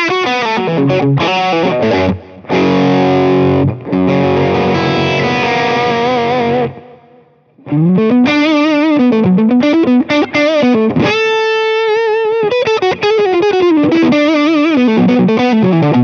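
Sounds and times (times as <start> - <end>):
overdriven electric guitar with reverb: 0.0 - 16.0.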